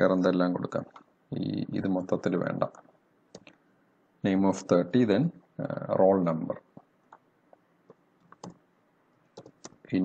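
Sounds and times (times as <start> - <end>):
faint keyboard keystrokes: 7.9 - 8.6, 9.4 - 9.8.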